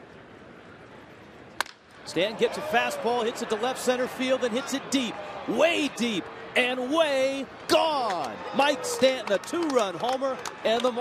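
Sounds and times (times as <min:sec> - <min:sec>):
wooden bat hitting ball: 0:01.6 - 0:01.8.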